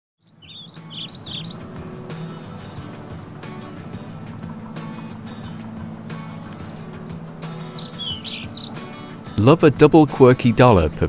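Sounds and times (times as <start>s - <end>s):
birds chirping: 0.2s - 11.0s.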